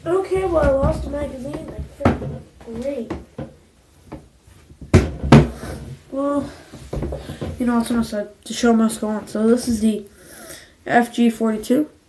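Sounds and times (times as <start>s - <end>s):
sharp knocks: 4.1s - 5.8s.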